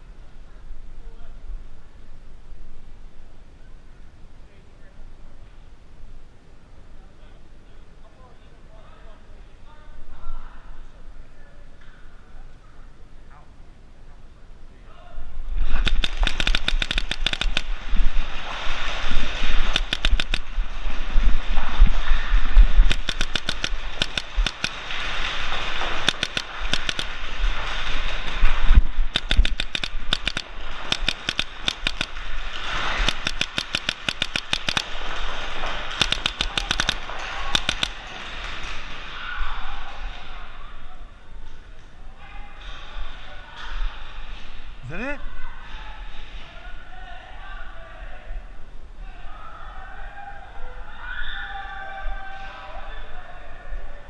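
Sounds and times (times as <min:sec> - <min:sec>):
paintball markers firing: 0:15.8 - 0:17.7, 0:19.7 - 0:20.4, 0:22.8 - 0:24.8, 0:26.0 - 0:27.1, 0:29.2 - 0:32.2, 0:33.0 - 0:35.0, 0:35.9 - 0:38.0.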